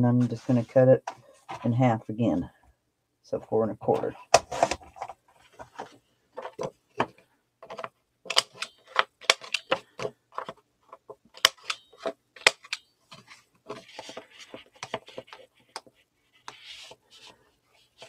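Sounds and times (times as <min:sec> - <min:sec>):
card tapping and rustling: 0:04.0 - 0:18.0
corner punch clicking: 0:08.3 - 0:09.8, 0:11.4 - 0:12.8.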